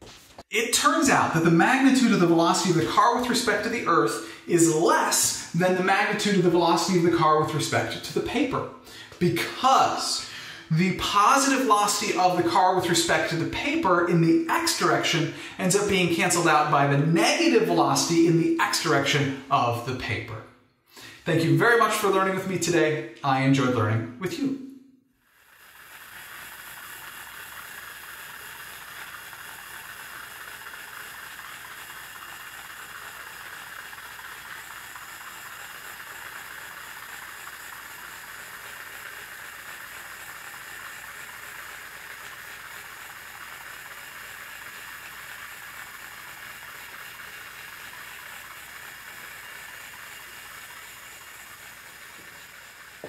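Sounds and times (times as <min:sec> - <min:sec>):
toy car motor whirring: 0:25.2 - 0:53.0.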